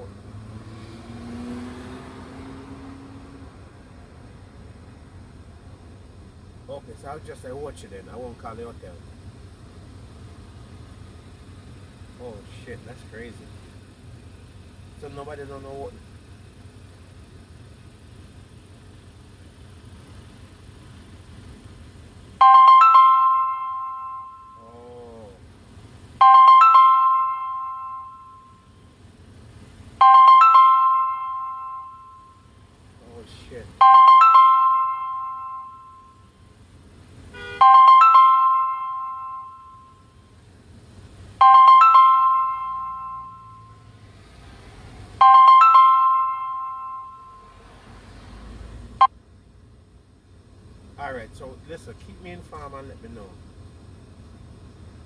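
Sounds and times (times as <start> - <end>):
phone ringtone chiming notes: 22.4 - 24.8, 26.2 - 28.8, 30.0 - 32.6, 33.8 - 36.4, 37.6 - 40.2, 41.4 - 43.9, 45.2 - 47.6.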